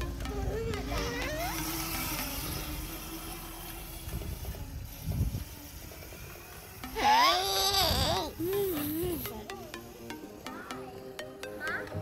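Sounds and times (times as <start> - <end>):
mini motorbike humming: 0.0 - 12.0.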